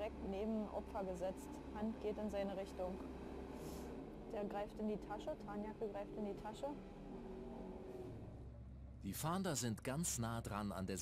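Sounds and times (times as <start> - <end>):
train running rumble: 0.0 - 8.3.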